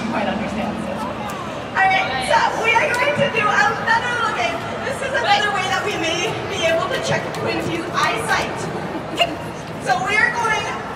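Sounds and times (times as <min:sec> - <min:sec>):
people talking: 0:00.0 - 0:10.9.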